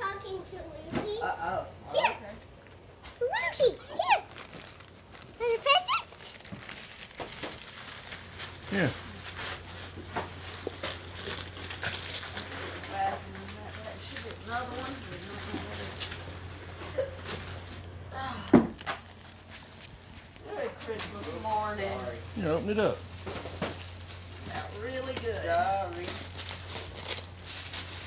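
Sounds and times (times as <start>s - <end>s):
wrapping paper crinkling: 2.5s - 18.1s, 18.8s - 28.0s.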